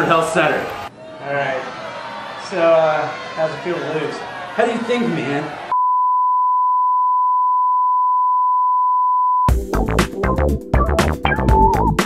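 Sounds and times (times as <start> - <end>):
electronic music with drum-machine beat: 9.5 - 12.0.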